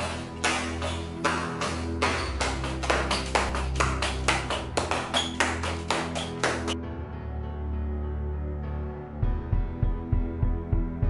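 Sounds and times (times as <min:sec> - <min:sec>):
hand slapping foot: 0:00.0 - 0:06.8
background music with low bass: 0:00.0 - 0:11.0.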